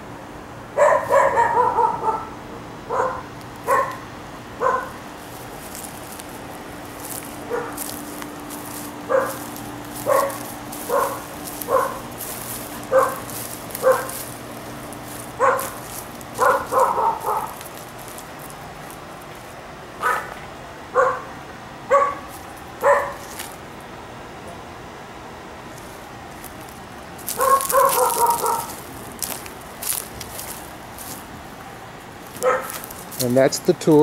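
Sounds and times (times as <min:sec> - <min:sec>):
faint steady hum: 0:00.0 - 0:34.0
dog barking: 0:00.8 - 0:05.0, 0:07.5 - 0:07.8, 0:09.1 - 0:09.4, 0:10.0 - 0:12.1, 0:12.8 - 0:14.2, 0:15.4 - 0:17.6, 0:20.0 - 0:21.3, 0:21.9 - 0:23.3, 0:27.3 - 0:28.8, 0:32.4 - 0:32.9.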